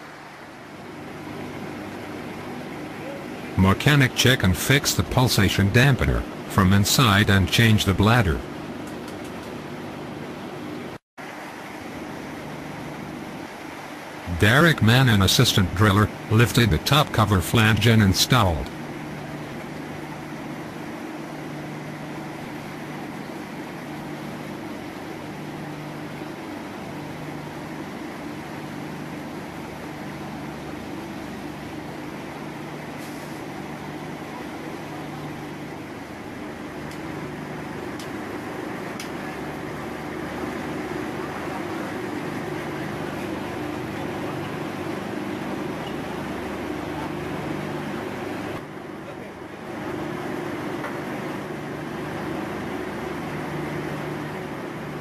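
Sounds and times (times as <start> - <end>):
machinery drone: 0.0 - 8.9, 9.6 - 55.0.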